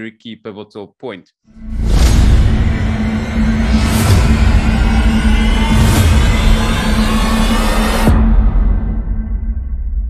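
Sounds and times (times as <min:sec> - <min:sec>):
low drone: 0:01.6 - 0:10.0.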